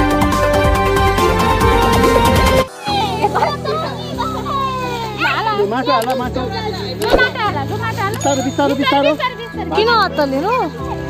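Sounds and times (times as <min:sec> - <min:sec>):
children chattering and calling out: 0:02.8 - 0:08.0.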